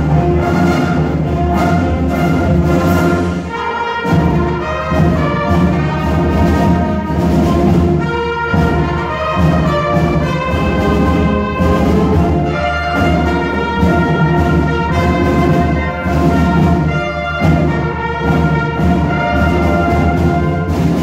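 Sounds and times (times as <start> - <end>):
brass instruments: 0.0 - 21.0
concert band playing a march: 0.0 - 21.0.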